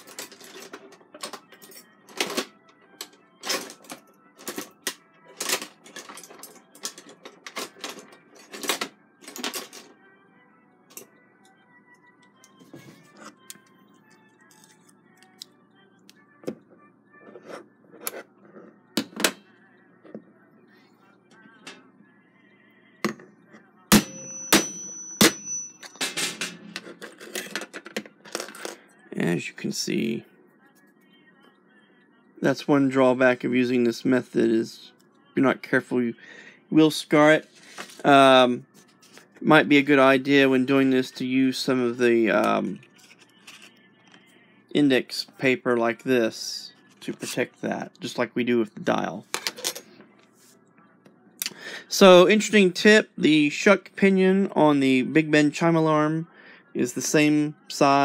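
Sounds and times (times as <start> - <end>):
high metallic ring: 23.9 - 26.2.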